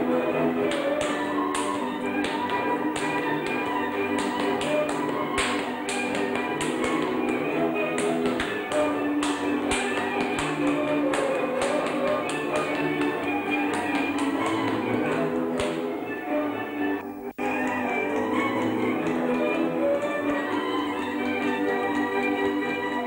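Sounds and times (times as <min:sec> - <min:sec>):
folk dance music: 0:00.0 - 0:23.0.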